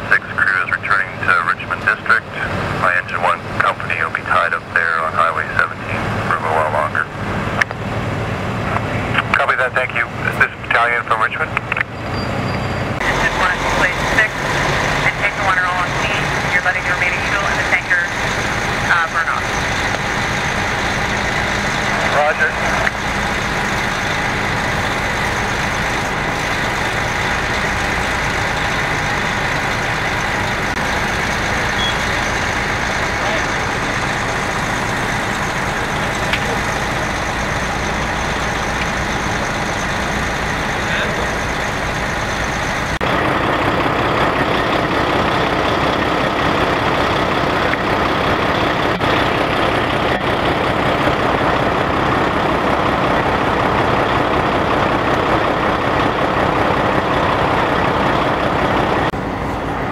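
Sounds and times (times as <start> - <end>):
fire truck engine running: 0.0 - 59.9.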